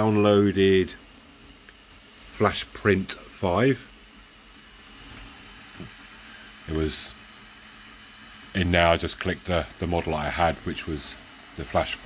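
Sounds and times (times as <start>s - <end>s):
room noise hum and hiss: 0.0s - 12.0s.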